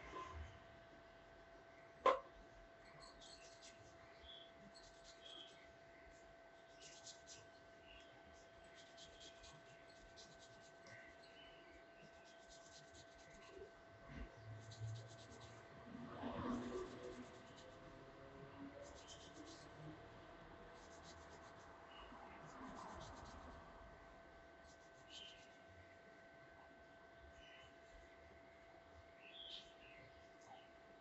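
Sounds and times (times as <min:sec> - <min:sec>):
faint steady hum: 0:00.0 - 0:31.0
fingernails scratching through hair: 0:14.6 - 0:15.6.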